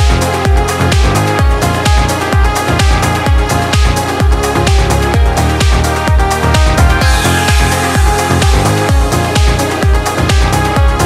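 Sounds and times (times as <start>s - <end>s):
electronic dance music: 0.0s - 11.0s
kick drum: 0.0s - 11.0s
falling synth sweep: 6.4s - 9.5s.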